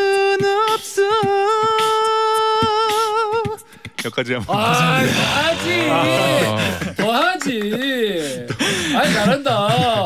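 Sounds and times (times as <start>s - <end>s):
beatboxed beat: 0.0s - 10.0s.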